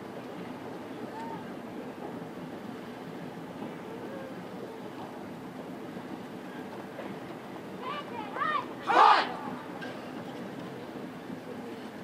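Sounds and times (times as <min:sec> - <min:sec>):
low murmur of stadium crowd: 0:00.0 - 0:12.0.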